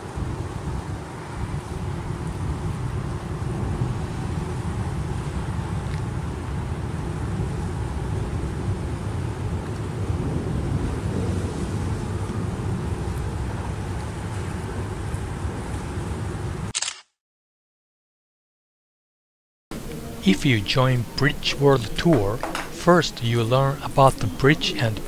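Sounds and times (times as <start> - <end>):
wind: 0.0 - 17.1, 19.7 - 25.0
road traffic rumble: 19.7 - 25.0.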